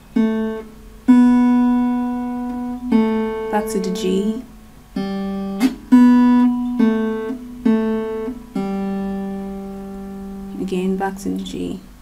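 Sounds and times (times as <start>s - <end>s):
acoustic guitar melody: 0.0s - 11.9s.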